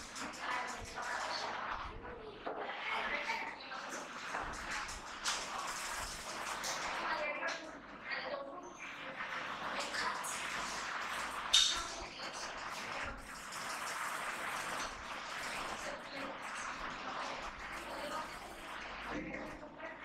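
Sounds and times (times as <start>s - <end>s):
indistinct voices: 0.0s - 13.9s, 14.8s - 20.0s
room noise: 0.0s - 20.0s.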